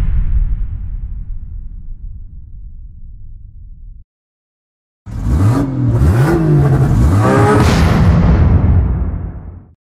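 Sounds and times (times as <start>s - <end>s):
car engine revving hard: 5.1s - 8.2s.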